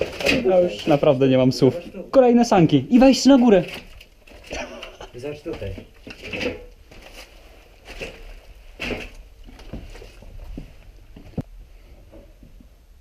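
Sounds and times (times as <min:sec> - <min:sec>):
knocks and rustles: 0:03.4 - 0:12.7
footsteps on debris: 0:05.4 - 0:11.4.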